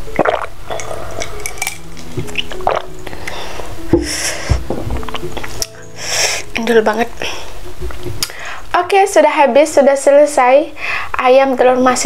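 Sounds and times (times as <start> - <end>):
person gulping a drink: 0.0 - 5.7
background music: 0.0 - 12.0.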